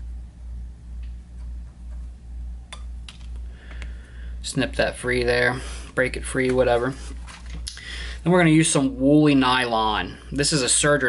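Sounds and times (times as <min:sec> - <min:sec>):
pulsing low hum: 0:00.0 - 0:08.2.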